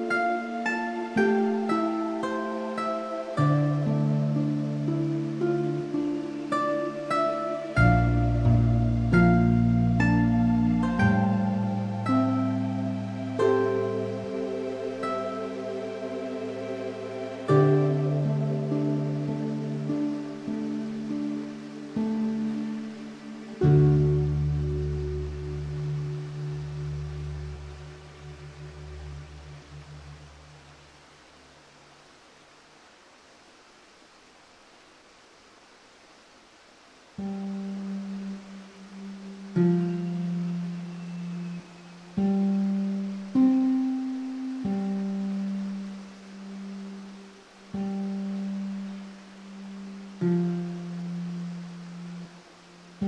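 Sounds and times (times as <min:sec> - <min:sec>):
classical guitar low notes: 0:00.0 - 0:14.3, 0:39.0 - 0:46.8, 0:49.6 - 0:53.0
faint hiss: 0:00.0 - 0:53.0.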